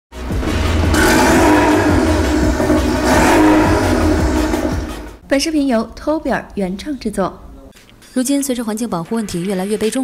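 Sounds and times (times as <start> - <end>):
electronic music with heavy beat: 0.7 - 5.2.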